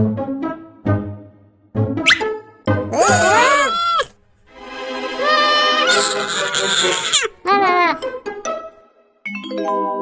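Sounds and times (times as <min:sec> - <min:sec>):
cartoon kitten sobbing wail: 0:02.9 - 0:04.1, 0:05.2 - 0:08.0.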